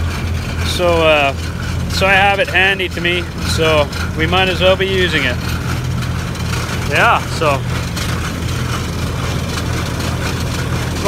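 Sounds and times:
machinery droning: 0.0 - 11.0.

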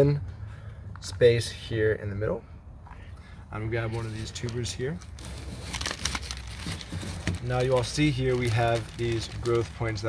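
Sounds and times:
plastic bag crinkling: 3.9 - 10.0.

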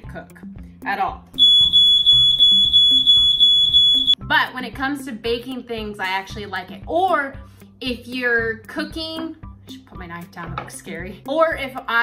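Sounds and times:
smoke alarm steady tone: 1.4 - 4.2.

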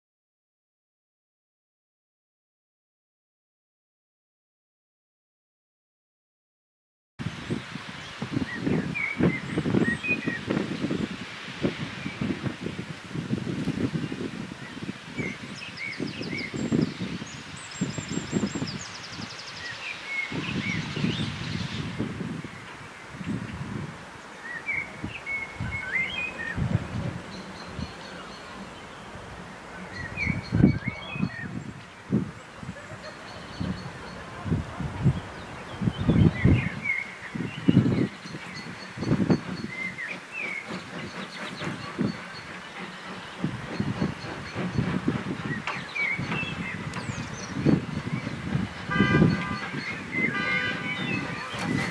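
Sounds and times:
songbirds chirping: 7.3 - 51.9.

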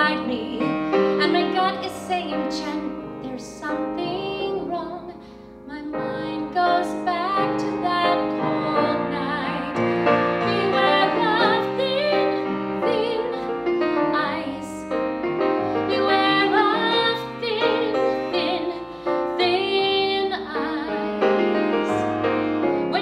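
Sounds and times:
woman singing a ballad: 0.0 - 9.8, 10.4 - 14.9, 15.6 - 22.2
piano accompaniment: 0.0 - 23.0.

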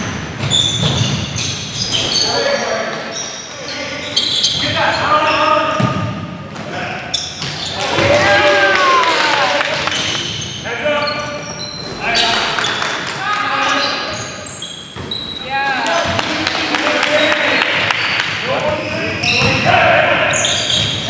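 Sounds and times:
sneakers squeaking on hardwood: 0.0 - 8.3, 9.9 - 16.3, 17.0 - 21.0.

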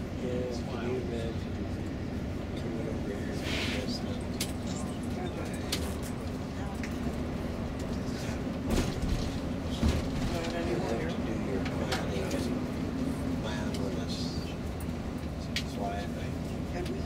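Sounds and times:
coach road rumble: 0.0 - 17.0.

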